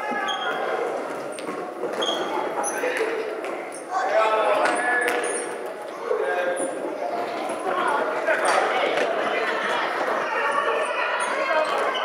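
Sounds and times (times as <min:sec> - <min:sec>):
people shouting in a hall: 0:00.0 - 0:01.1, 0:07.1 - 0:12.0.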